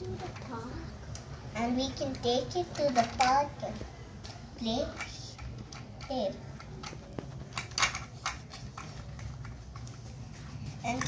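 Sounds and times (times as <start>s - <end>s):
plastic toy clicking and clattering: 1.1s - 10.0s.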